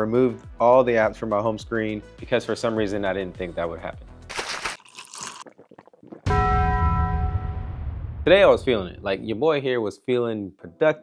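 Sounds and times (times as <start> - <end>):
bell-like strike ringing: 6.3 - 8.1
deep low boom: 6.3 - 9.5.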